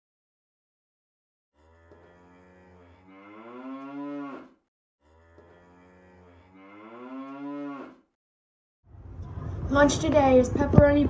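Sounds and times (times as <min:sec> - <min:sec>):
cow mooing: 0:01.6 - 0:08.1.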